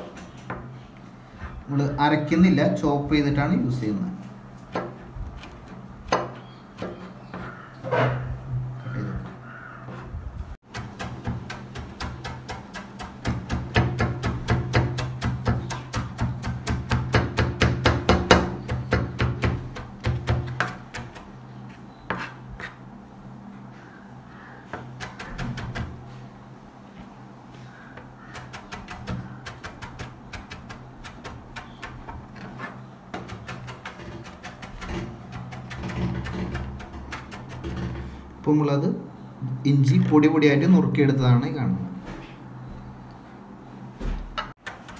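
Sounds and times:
knife chopping on plastic board: 10.7 - 21.3, 24.7 - 26.0, 28.3 - 32.4.

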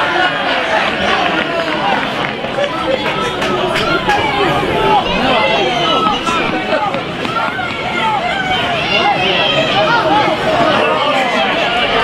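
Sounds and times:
crowd shouts and chatter: 0.0 - 12.0.

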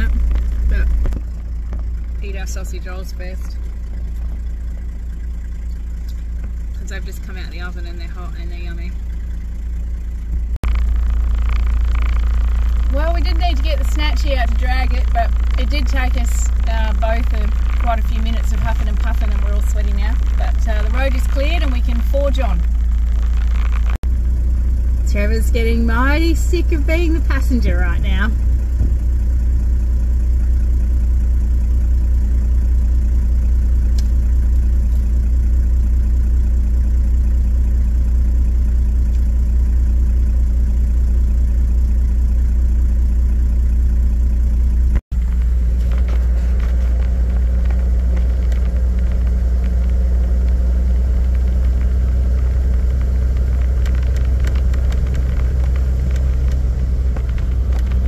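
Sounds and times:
engine drone inside cab: 0.0 - 58.0.

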